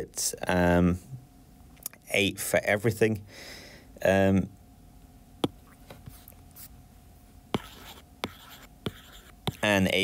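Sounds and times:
stylus scratching strokes: 7.6s - 9.9s.

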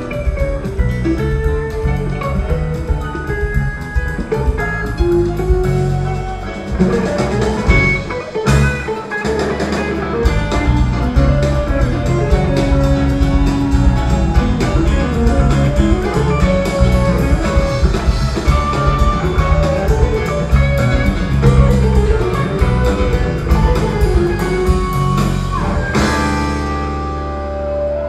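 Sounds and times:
electric guitar: 0.0s - 28.0s
live rock band playing: 0.0s - 28.0s.

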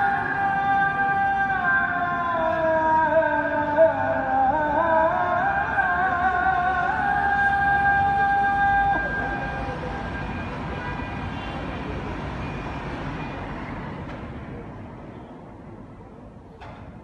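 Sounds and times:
call to prayer singing: 0.0s - 13.2s.

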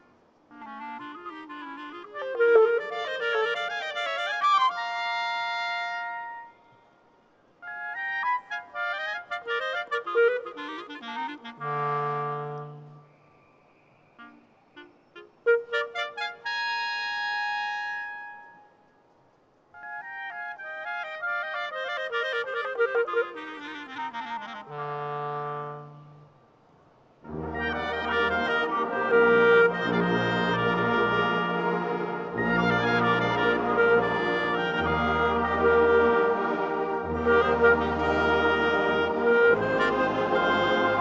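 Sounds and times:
wind band with brass playing: 0.0s - 6.8s, 7.6s - 13.2s, 14.2s - 18.8s, 19.8s - 26.6s, 27.2s - 41.0s.

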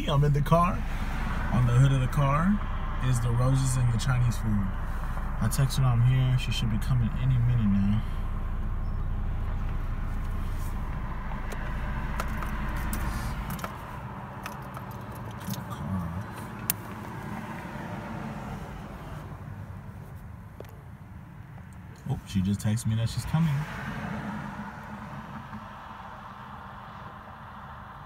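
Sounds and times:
car engine idling: 0.0s - 28.0s
clicks and rattles inside car: 9.5s - 17.2s.

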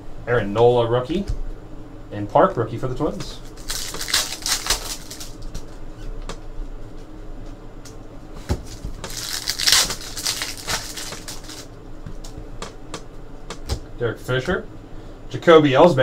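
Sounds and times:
foil wrapper tearing and crinkling: 3.5s - 5.7s, 8.7s - 11.7s.

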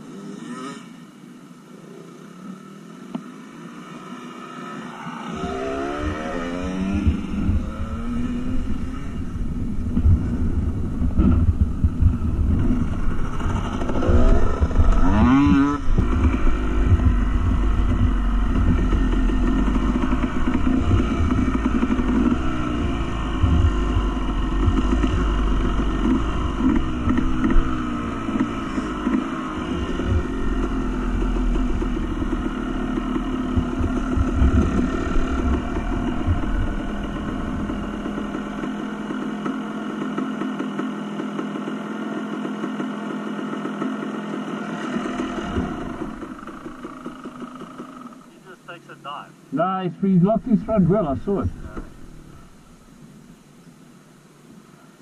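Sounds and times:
motorcycle engine revving: 0.0s - 49.2s, 50.0s - 54.2s.

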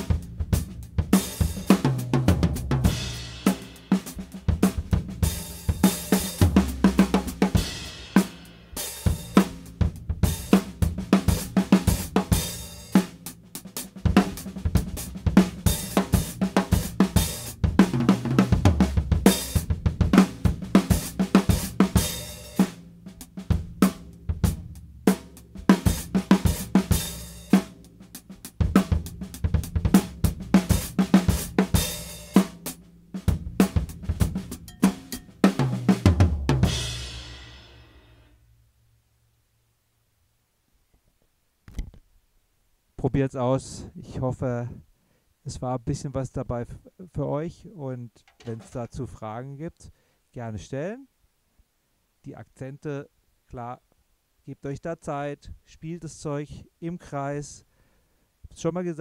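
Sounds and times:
crash cymbal and bass drum: 0.0s - 38.4s
drum kit groove and fills: 0.0s - 38.4s, 48.2s - 48.9s.

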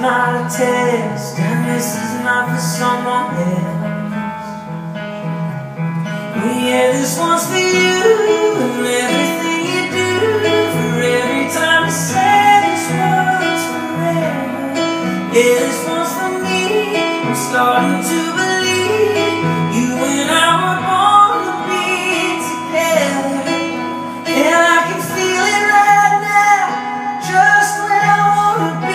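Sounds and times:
acoustic guitar: 0.0s - 28.9s
keyboard piano chords: 0.0s - 28.9s.

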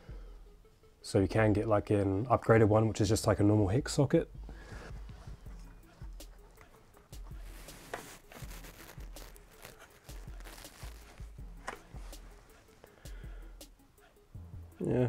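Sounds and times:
rubber belt rustling and clicking: 5.2s - 12.9s.

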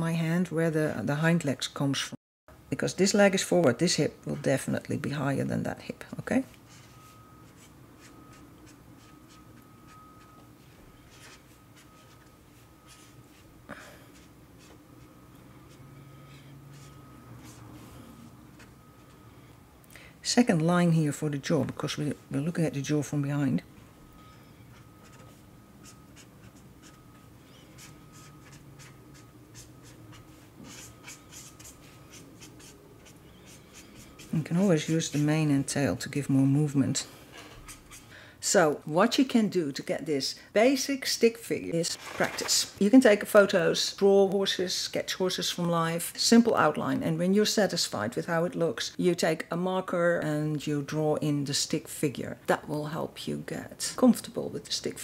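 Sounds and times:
faint steady high tone: 6.0s - 14.2s, 22.0s - 30.3s
marker scratching on paper: 6.7s - 9.6s, 11.1s - 12.2s, 12.9s - 13.5s, 14.1s - 14.8s, 16.7s - 17.7s, 24.7s - 27.0s, 27.7s - 35.5s.

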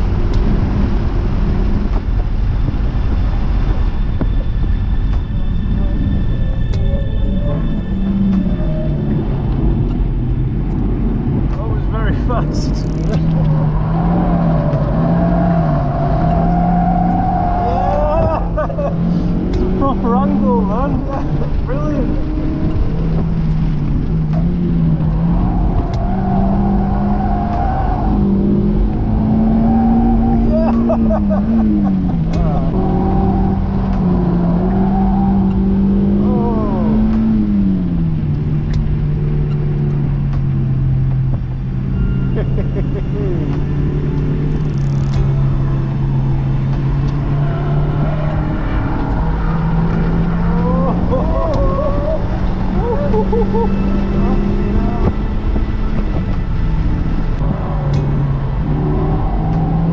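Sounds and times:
wind noise on microphone: 0.0s - 16.3s, 43.7s - 59.9s
car engine revving high: 6.7s - 59.9s.

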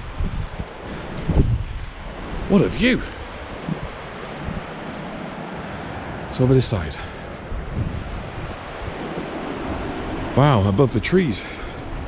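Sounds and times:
wind noise on microphone: 0.0s - 12.0s.

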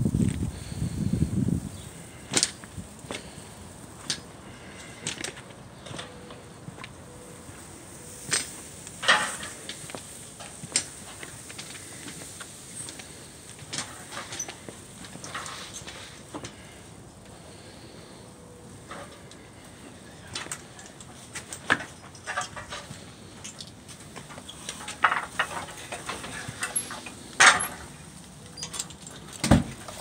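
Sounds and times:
footsteps: 2.1s - 16.8s.

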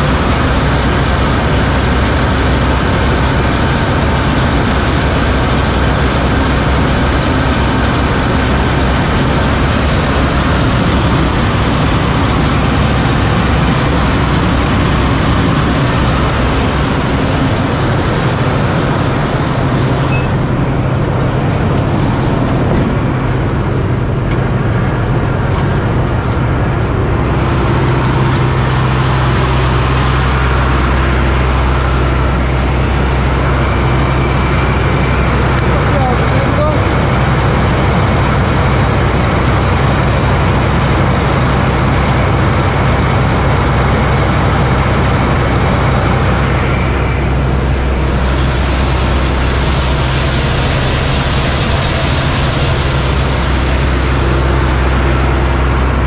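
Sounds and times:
diesel engine humming: 0.0s - 56.0s.

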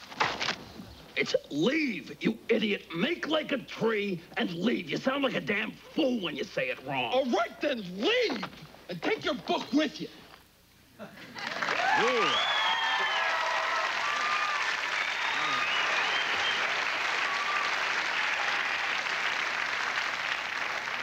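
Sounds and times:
audience applauding: 11.3s - 21.0s
whoops and cheers: 11.6s - 18.9s.

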